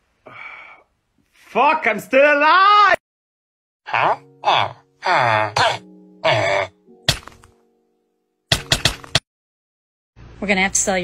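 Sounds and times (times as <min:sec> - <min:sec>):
low voice groaning: 0:03.9 - 0:06.8.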